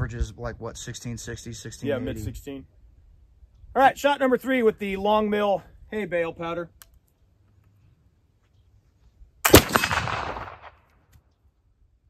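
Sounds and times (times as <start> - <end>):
rifle shot echoing: 9.4 - 10.9.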